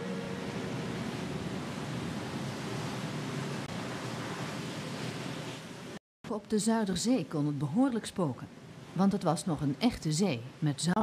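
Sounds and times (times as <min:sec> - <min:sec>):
held music note: 0:00.0 - 0:01.4
rough sea waves: 0:00.0 - 0:06.0, 0:06.6 - 0:11.0.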